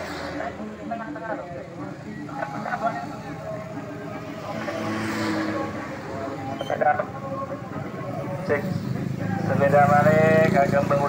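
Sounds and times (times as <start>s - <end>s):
motorcycles passing: 0.0s - 11.0s.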